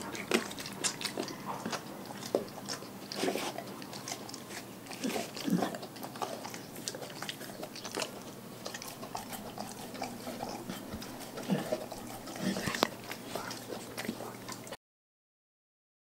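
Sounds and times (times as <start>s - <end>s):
dog chewing with wet crunches: 0.0s - 14.8s.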